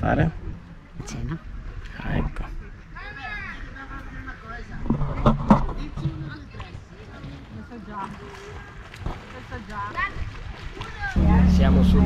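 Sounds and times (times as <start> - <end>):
people's voices: 5.6 - 12.0.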